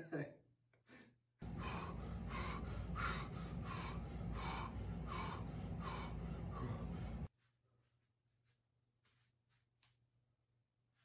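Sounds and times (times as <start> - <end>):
man breathing hard and fast: 0.8 - 9.7
steady low hum: 1.4 - 7.4.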